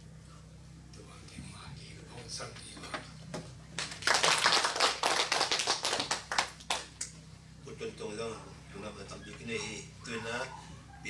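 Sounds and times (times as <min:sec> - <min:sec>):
audience applauding: 0:03.8 - 0:07.0.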